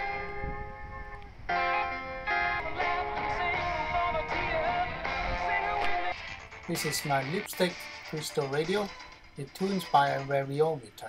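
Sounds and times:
radio music with singing and guitar: 0:01.6 - 0:11.0.

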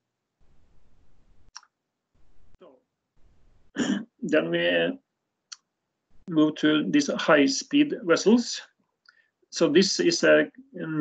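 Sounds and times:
low background hiss: 0:00.2 - 0:08.7, 0:09.5 - 0:11.0
man speaking softly: 0:03.8 - 0:05.0, 0:06.3 - 0:08.6, 0:09.6 - 0:11.0.

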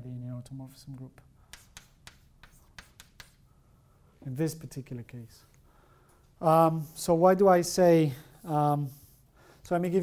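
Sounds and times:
chalk writing on blackboard: 0:01.4 - 0:03.5.

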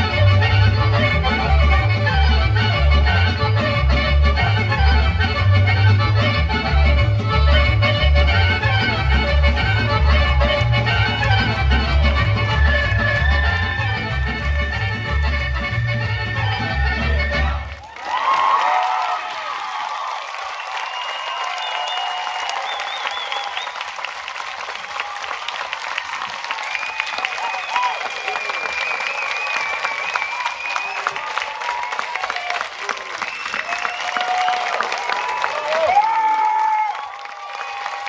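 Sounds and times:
audience applauding: 0:00.0 - 0:38.0
crowd shouting and cheering: 0:00.0 - 0:38.0.

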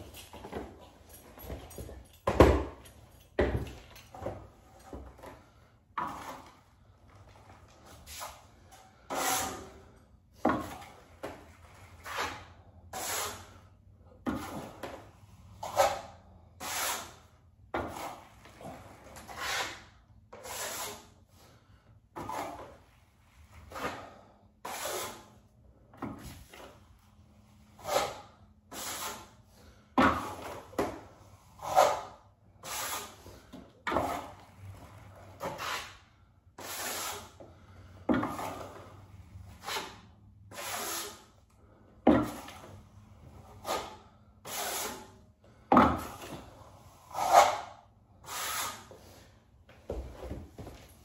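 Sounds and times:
steel trowel scraping wall: 0:08.0 - 0:09.9, 0:11.8 - 0:13.6, 0:14.3 - 0:15.0, 0:15.6 - 0:21.5, 0:22.2 - 0:22.8, 0:23.6 - 0:25.4, 0:27.7 - 0:29.4, 0:31.4 - 0:36.0, 0:36.6 - 0:37.4, 0:38.2 - 0:41.3, 0:42.2 - 0:45.2, 0:46.0 - 0:49.0.

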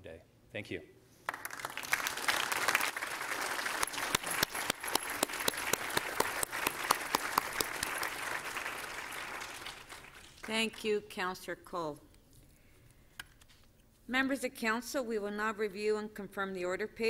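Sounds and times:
crowd applause: 0:01.3 - 0:10.5.

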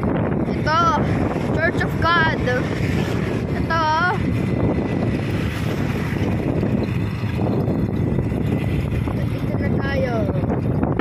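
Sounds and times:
vehicle rumble on road: 0:00.0 - 0:11.0
wind buffeting microphone: 0:00.0 - 0:11.0.

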